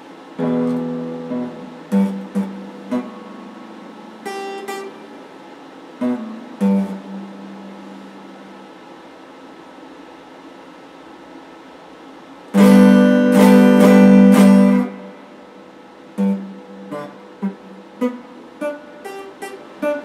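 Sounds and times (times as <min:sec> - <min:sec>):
electric guitar notes ringing: 0:00.0 - 0:05.4, 0:06.0 - 0:08.7, 0:12.6 - 0:20.0
electric guitar chord strummed: 0:00.0 - 0:08.8, 0:12.5 - 0:20.0
faint steady hum: 0:00.0 - 0:20.0.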